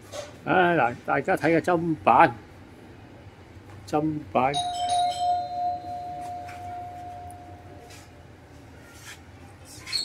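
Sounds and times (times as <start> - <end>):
bell-like chime: 4.6 - 7.8.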